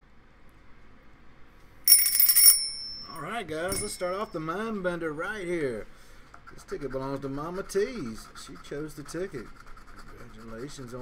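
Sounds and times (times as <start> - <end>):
small bell ringing: 1.9 - 4.6.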